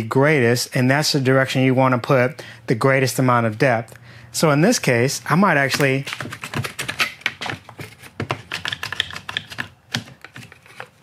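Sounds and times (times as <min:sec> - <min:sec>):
wooden strip knocking: 0:05.7 - 0:10.4.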